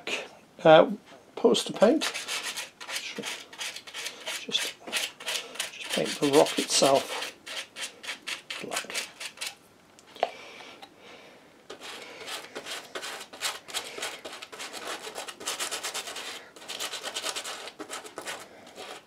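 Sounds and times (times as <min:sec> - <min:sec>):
paintbrush scrubbing scratchy strokes: 0:02.0 - 0:09.6, 0:11.7 - 0:19.0.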